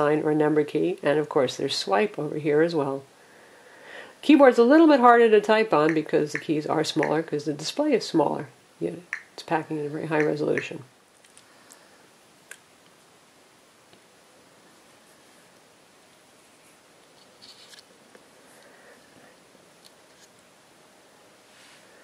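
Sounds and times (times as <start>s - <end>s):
rustle of handling a smartphone: 14.6s - 20.5s, 21.4s - 22.0s.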